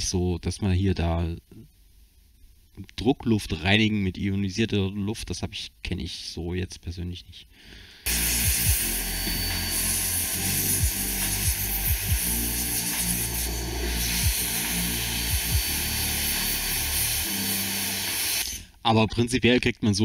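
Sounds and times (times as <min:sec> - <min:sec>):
low background music: 0:08.1 - 0:18.5
steam cleaner hissing: 0:08.1 - 0:18.7.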